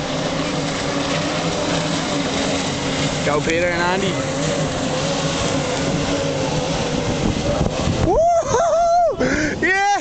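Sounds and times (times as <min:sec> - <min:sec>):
boat outboard engines at speed: 0:00.0 - 0:10.0.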